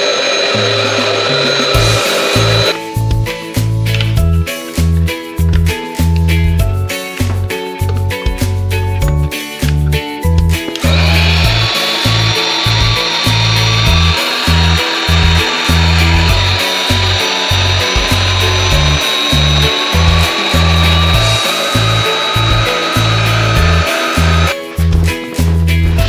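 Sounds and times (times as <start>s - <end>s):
electric air pump whining: 0.0s - 3.3s, 10.6s - 24.8s
background music with steady beat: 0.2s - 26.0s.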